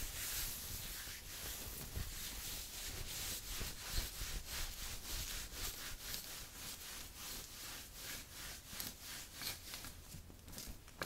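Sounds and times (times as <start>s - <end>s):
fingernails scratching fabric: 0.0s - 10.0s.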